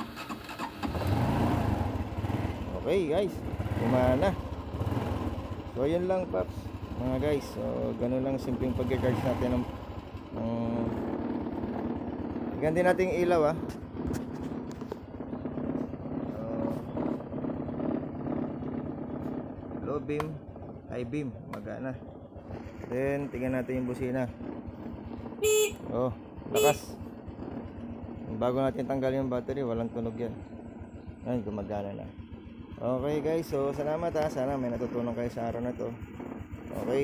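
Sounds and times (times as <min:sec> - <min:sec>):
motorcycle engine starting: 0:00.0 - 0:37.0.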